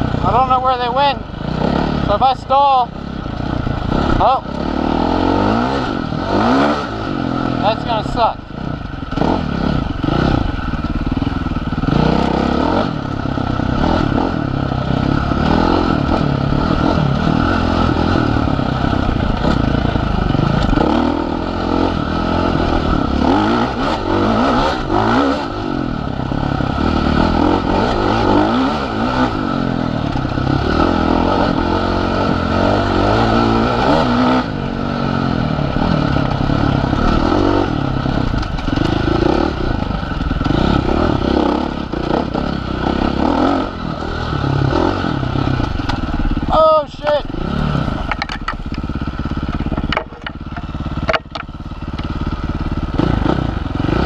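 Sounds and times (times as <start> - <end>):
dirt bike engine revving: 0.0 - 54.0
bike clattering over rough ground: 48.0 - 52.1.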